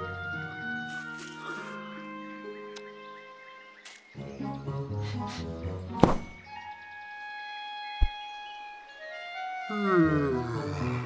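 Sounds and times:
orchestral score music: 0.0s - 11.0s
loud thud: 6.0s - 6.4s
sharp thump: 6.0s - 6.4s.

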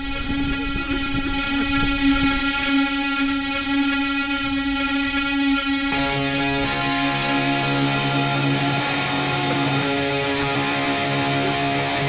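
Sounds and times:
steady held tone: 0.0s - 12.0s.

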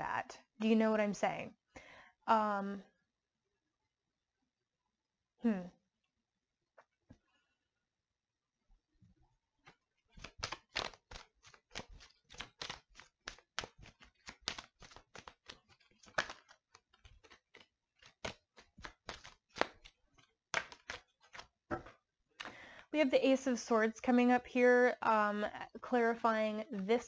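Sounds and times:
cards being shuffled: 9.6s - 22.0s.

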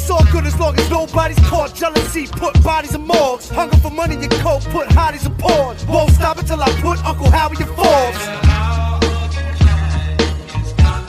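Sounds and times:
deep bass line: 0.0s - 11.0s
rapping over a beat: 0.0s - 11.0s
heavy kick drum: 0.2s - 0.5s, 1.4s - 1.7s, 2.5s - 3.0s, 3.8s - 4.1s, 4.9s - 8.8s, 9.6s - 9.9s, 10.8s - 11.0s.

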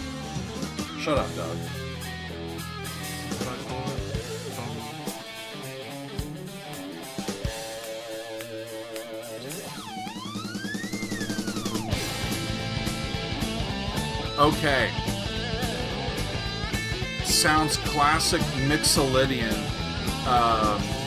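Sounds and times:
bass guitar: 0.0s - 21.0s
drum kit: 0.0s - 21.0s
electric guitar lead: 0.0s - 21.0s.

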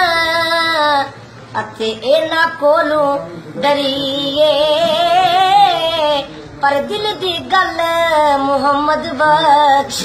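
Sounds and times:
high solo voice singing: 1.8s - 10.0s.

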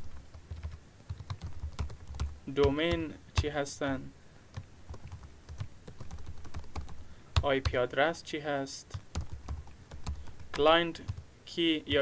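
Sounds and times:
computer keyboard typing: 0.1s - 3.5s, 4.5s - 7.8s, 8.9s - 11.2s.

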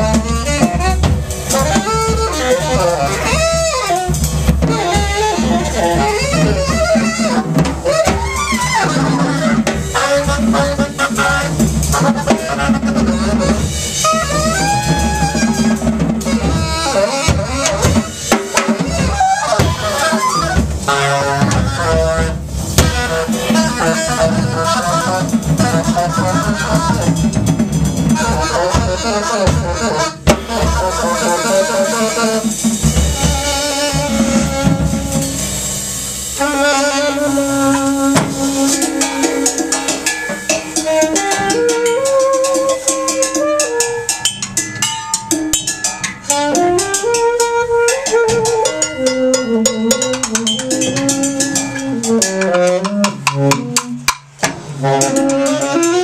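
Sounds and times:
alto saxophone runs and trills: 0.0s - 35.6s, 36.4s - 44.3s, 46.2s - 54.2s, 54.8s - 56.0s
busy drumming on drum kit: 0.0s - 56.0s.

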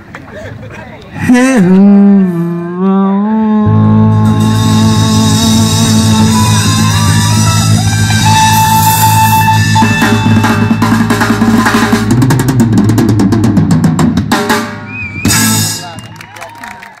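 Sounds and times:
crashing chord ringing out: 3.8s - 12.2s
live rock band playing: 4.1s - 16.1s
rapid drum roll: 4.3s - 16.0s.

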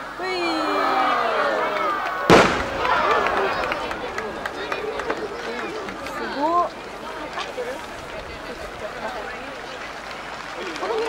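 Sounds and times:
crowd chatter: 0.0s - 11.0s
firework boom with echo: 2.2s - 6.4s.

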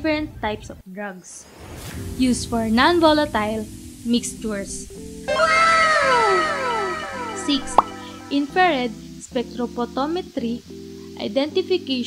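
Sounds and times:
background music: 2.0s - 12.0s
meow-like gliding sound effect: 5.3s - 8.7s.

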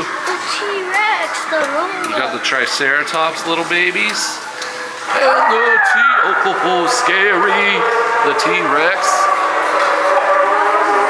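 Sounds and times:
dinosaur roar: 5.1s - 11.0s.

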